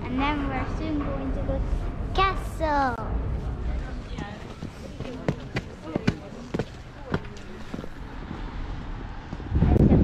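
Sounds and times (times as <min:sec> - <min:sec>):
faint voices: 0:03.0 - 0:10.0
footsteps on pavement: 0:04.1 - 0:09.5.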